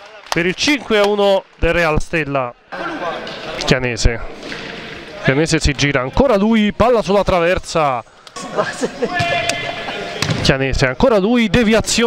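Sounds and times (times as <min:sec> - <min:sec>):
players calling out: 0:07.9 - 0:10.6
ball strike: 0:10.2 - 0:10.5.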